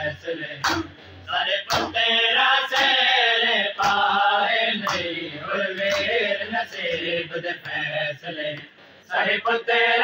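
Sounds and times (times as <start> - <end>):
men chanting in unison: 0.0 - 10.0
chest-beating slaps: 0.6 - 1.0, 1.7 - 2.0, 2.7 - 3.0, 3.8 - 4.1, 4.8 - 5.2.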